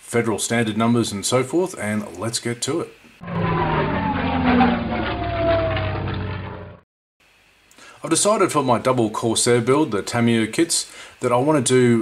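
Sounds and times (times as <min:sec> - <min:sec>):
engine-like rumble: 0:03.2 - 0:06.8
whine falling in pitch: 0:03.2 - 0:06.8.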